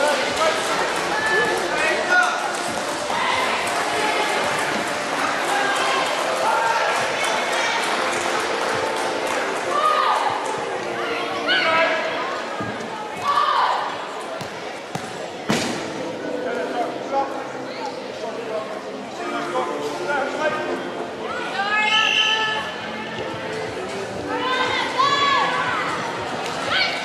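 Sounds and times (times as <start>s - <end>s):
background chatter: 0.0s - 27.0s
crowd murmur: 0.0s - 27.0s.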